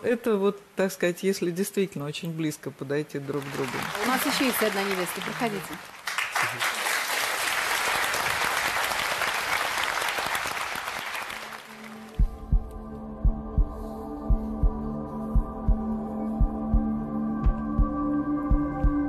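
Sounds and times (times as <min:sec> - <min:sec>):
audience applauding: 0:03.2 - 0:12.3
heartbeat-like double thump: 0:12.2 - 0:19.0.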